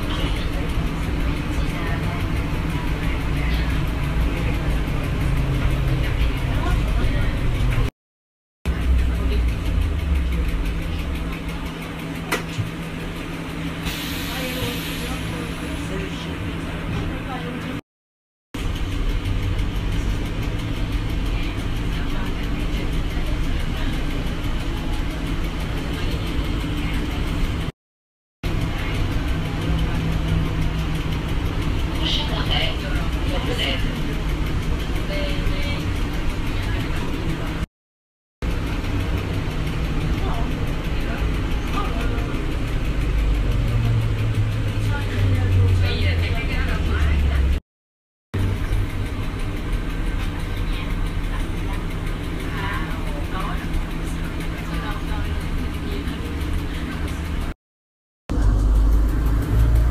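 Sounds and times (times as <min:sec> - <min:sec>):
road rumble: 0:00.0 - 0:07.9, 0:08.6 - 0:17.8, 0:18.6 - 0:27.8, 0:28.4 - 0:37.7, 0:38.4 - 0:47.6, 0:48.4 - 0:57.6, 0:58.3 - 0:59.9.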